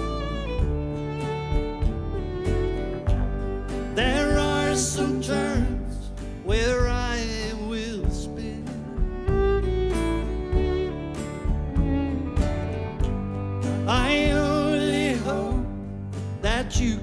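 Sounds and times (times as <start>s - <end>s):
fiddle sliding melody: 0.0s - 17.0s
keyboard: 0.0s - 17.0s
strummed acoustic guitar: 0.0s - 17.0s.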